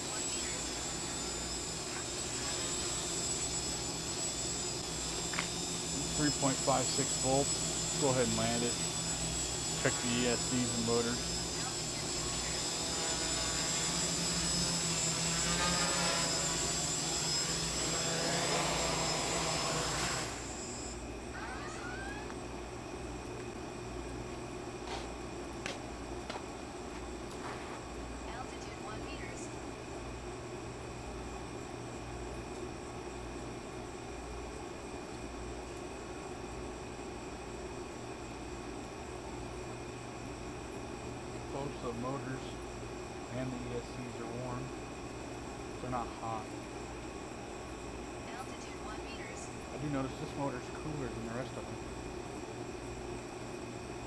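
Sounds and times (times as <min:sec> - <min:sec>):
drone propellers whirring: 0:00.0 - 0:23.5, 0:24.6 - 0:29.9, 0:43.3 - 0:52.5.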